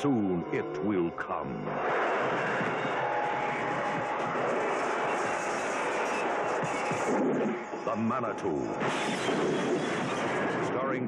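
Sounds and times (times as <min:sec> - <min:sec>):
dense rushing noise wash: 0:01.7 - 0:07.7.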